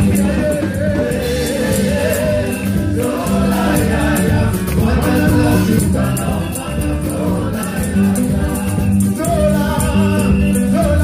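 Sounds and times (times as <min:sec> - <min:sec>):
band with steady beat: 0:00.0 - 0:11.0
choir singing: 0:00.0 - 0:11.0
crisp high percussion: 0:00.0 - 0:11.0.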